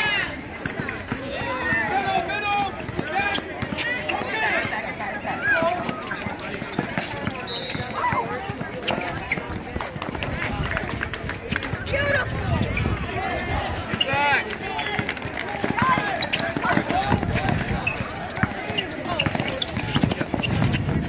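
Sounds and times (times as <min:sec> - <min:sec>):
voices of players and spectators: 0:00.0 - 0:21.0
people shouting: 0:01.2 - 0:06.1, 0:13.2 - 0:19.3
basketball bouncing: 0:02.7 - 0:05.0, 0:05.8 - 0:10.8, 0:13.9 - 0:21.0
running footsteps and sneaker scuffs: 0:12.6 - 0:21.0.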